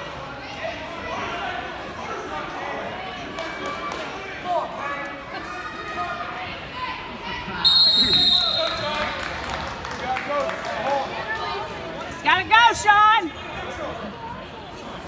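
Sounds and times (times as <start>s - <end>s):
chatter of voices: 0.0s - 8.2s
shrill whistle blast: 7.6s - 8.8s.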